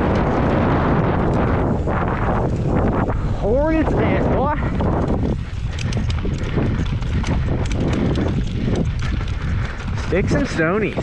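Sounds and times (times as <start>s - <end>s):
low rumble: 0.0s - 10.2s
bike rattling: 0.0s - 11.0s.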